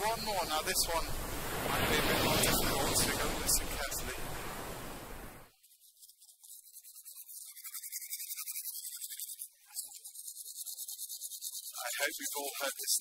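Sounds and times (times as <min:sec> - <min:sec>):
waves lapping: 0:00.0 - 0:05.5
toothbrush scrubbing teeth: 0:05.9 - 0:12.8.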